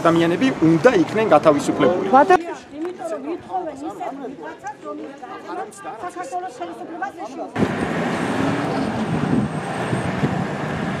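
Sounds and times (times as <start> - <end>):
car driving away on road: 7.6 - 11.0.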